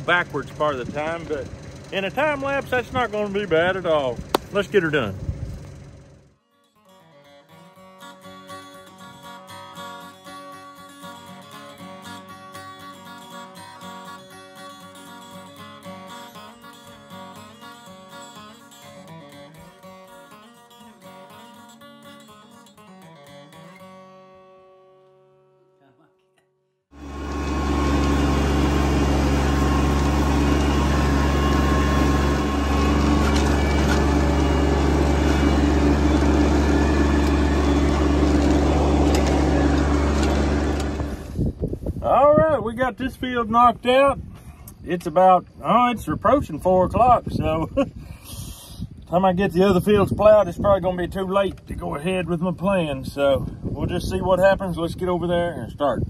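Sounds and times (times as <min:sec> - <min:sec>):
tractor engine running: 0:00.0 - 0:06.4, 0:26.9 - 0:41.7
plucked-string instrumental music: 0:06.4 - 0:41.2.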